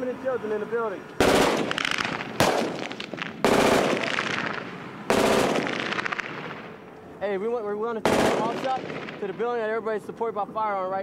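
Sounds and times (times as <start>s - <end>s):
automatic gunfire bursts: 1.2s - 6.7s, 8.0s - 9.4s.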